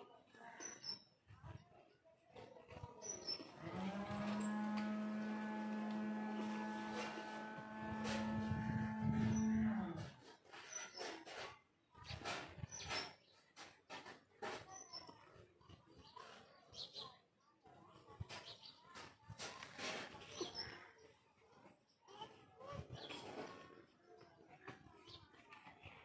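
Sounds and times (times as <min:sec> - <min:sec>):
long low animal call: 0:03.8 - 0:10.1.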